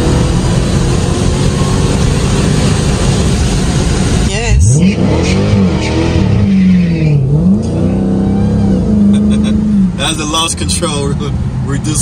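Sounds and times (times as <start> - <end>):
car engine under heavy throttle: 0.0 - 12.0.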